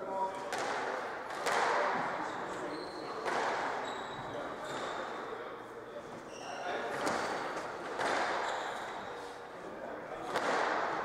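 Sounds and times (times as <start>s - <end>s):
sneakers squeaking on wooden floor: 2.3s - 5.1s, 6.2s - 6.6s, 8.4s - 9.2s
squash ball cracking off racquets: 7.9s - 8.4s, 10.2s - 11.0s.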